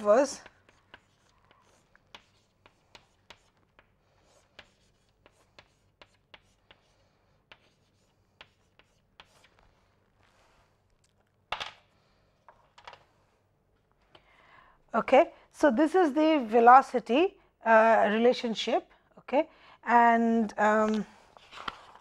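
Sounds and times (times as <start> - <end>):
chalk tapping and scratching on board: 0.0 - 10.6.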